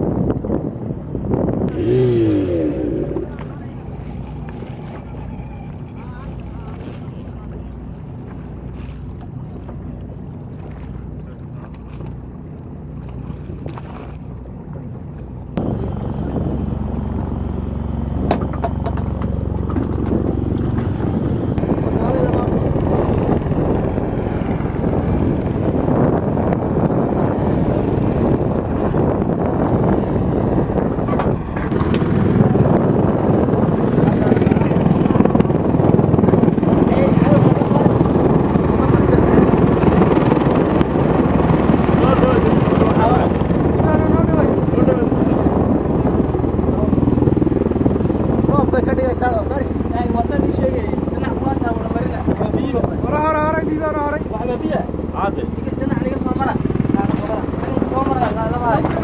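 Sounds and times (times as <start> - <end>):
aircraft rotor noise: 0.0 - 59.0.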